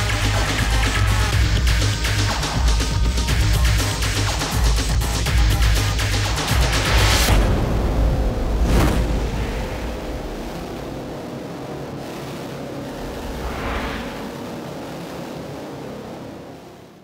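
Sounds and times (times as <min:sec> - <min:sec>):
low rumbling drone: 0:00.0 - 0:14.8
booming impact hit: 0:07.2 - 0:10.6
whoosh: 0:12.6 - 0:14.7.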